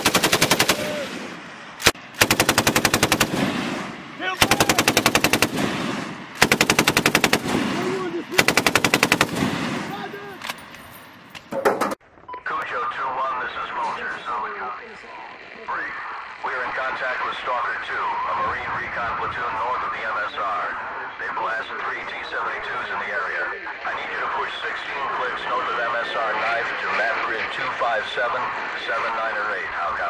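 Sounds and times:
person talking over radio: 7.7 - 8.5, 12.4 - 30.0.

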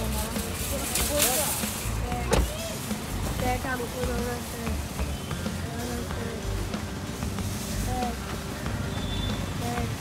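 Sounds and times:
background music: 0.0 - 10.0
sharp thump: 2.3 - 2.6.

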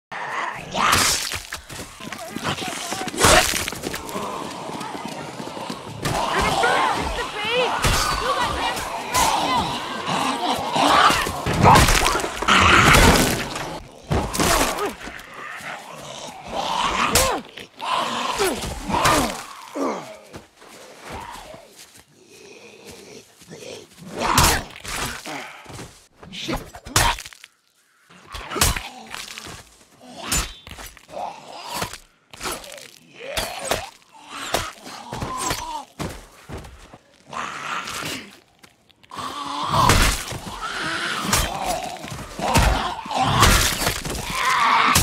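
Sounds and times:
growling groaning voices: 0.1 - 1.1, 1.7 - 25.7, 28.1 - 36.0, 37.1 - 45.0.

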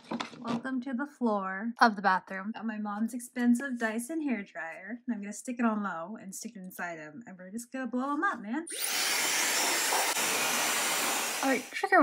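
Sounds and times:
hair dryer blowing: 8.7 - 12.0.

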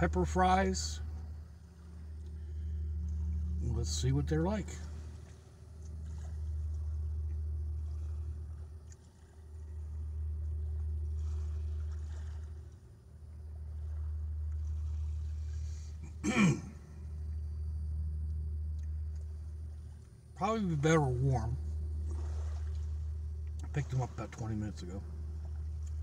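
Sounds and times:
low rumble: 0.0 - 26.0
man clearing his throat: 16.0 - 16.8.

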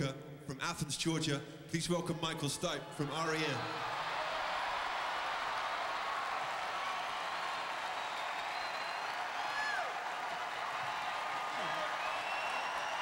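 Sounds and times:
crowd cheering and applauding: 3.0 - 13.0
whistles: 6.9 - 10.0, 10.8 - 13.0.

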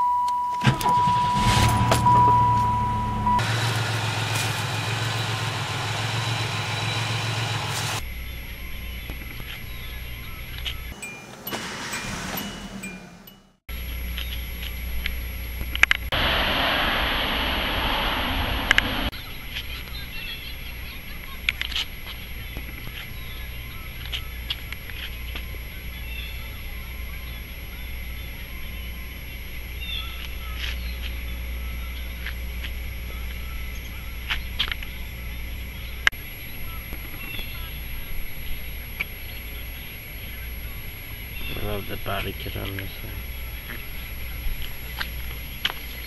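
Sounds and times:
steady beep-like tone: 0.0 - 3.4, 35.2 - 46.0
car engines starting and idling: 0.0 - 8.2, 8.8 - 46.0.

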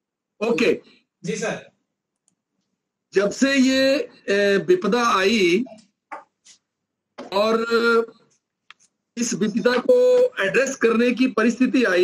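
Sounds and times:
man speaking: 0.4 - 1.7, 3.2 - 5.8, 7.2 - 8.2, 9.2 - 12.0
faint clicks: 2.1 - 2.8.

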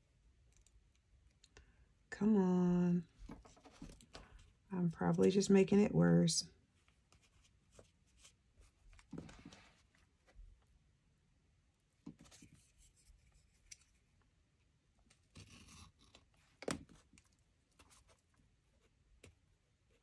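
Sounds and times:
paper rustling: 3.2 - 4.4, 7.1 - 10.4.

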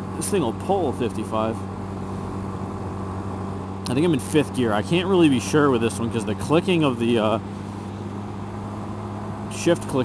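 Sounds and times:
motorcycle engine cruising: 0.0 - 10.0
road noise: 0.0 - 10.0.

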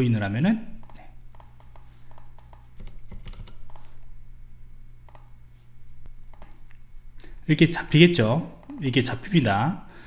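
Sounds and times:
low steady hum: 0.0 - 10.0
mouse clicks: 0.8 - 3.9, 5.0 - 5.4, 6.3 - 6.6
keyboard typing: 0.8 - 4.0, 5.1 - 5.3, 6.3 - 6.6.

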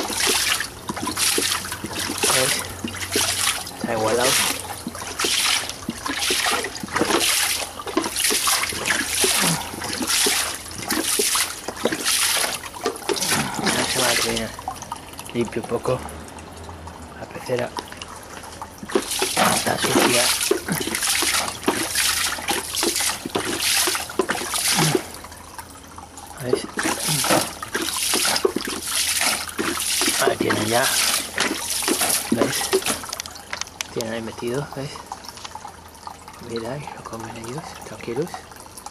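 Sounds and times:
water splashing into fish tank: 0.0 - 38.9.

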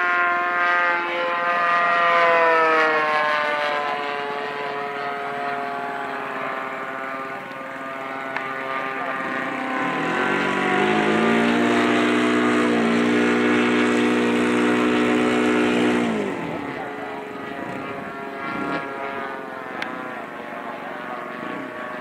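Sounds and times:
model airplane propeller engine: 0.0 - 22.0
second model plane engine: 0.0 - 22.0.

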